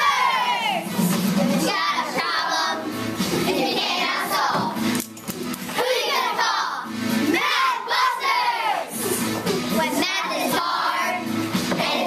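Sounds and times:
children shouting and cheering: 0:00.0 - 0:04.8, 0:05.7 - 0:12.0.

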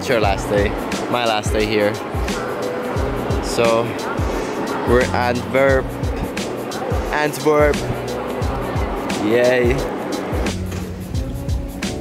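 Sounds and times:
held bass line: 0:03.0 - 0:03.9, 0:04.9 - 0:06.4, 0:07.6 - 0:09.0.

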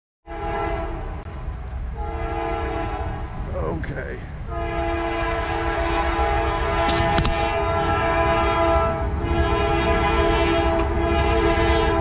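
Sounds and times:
locomotive air horn blasts: 0:00.3 - 0:01.2, 0:01.9 - 0:03.4, 0:04.5 - 0:12.0
train rumbling: 0:00.3 - 0:12.0.

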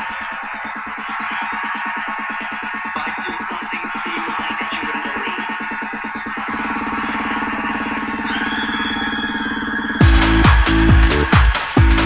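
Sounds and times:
house music beat: 0:00.0 - 0:12.0
rapidly pulsing synth chord: 0:00.0 - 0:12.0
stuttering synth chord: 0:04.9 - 0:11.3.

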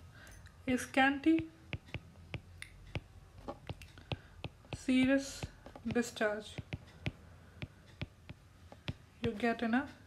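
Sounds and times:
woman speaking: 0:00.7 - 0:01.6, 0:04.7 - 0:06.7, 0:09.2 - 0:10.0
stylus tapping on tablet screen: 0:01.2 - 0:09.7.

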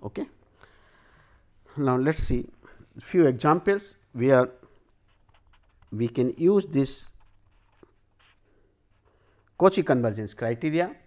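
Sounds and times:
pen scratching on paper: 0:05.1 - 0:06.4, 0:07.1 - 0:09.1.

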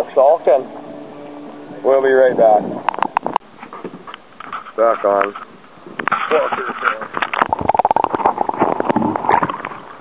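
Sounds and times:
water splashing and gurgling: 0:06.1 - 0:10.0.

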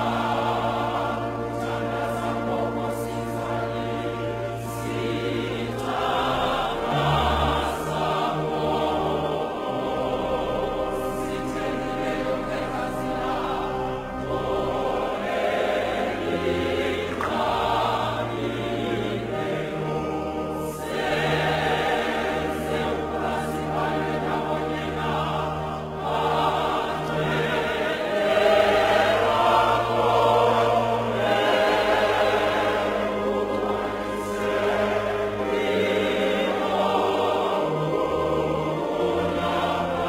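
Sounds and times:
choir singing held chords: 0:00.0 - 0:40.0.

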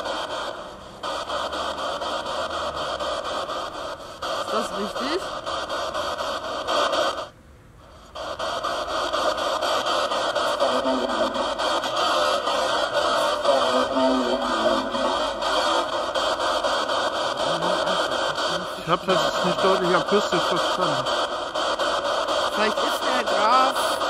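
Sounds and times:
choppy radio static sweeping: 0:00.0 - 0:07.3, 0:08.0 - 0:24.0
fragments of radio voices: 0:00.0 - 0:07.3, 0:08.0 - 0:24.0.

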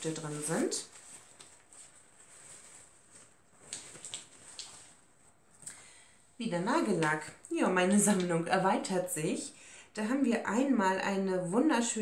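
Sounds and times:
rustling of package being opened: 0:00.0 - 0:05.6.

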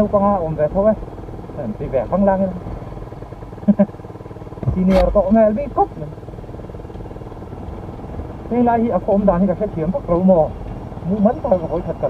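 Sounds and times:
motorcycle engine drone: 0:00.0 - 0:12.0
wind: 0:00.0 - 0:12.0
person talking: 0:04.6 - 0:06.2.

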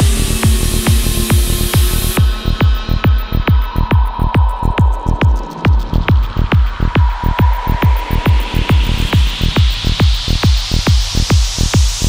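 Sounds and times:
kick drum: 0:00.0 - 0:12.0
pulsing bass: 0:00.0 - 0:12.0.

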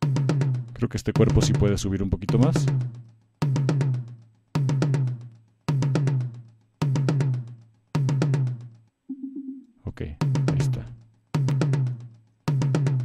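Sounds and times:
tom drum hits: 0:00.0 - 0:08.7, 0:10.2 - 0:13.0.

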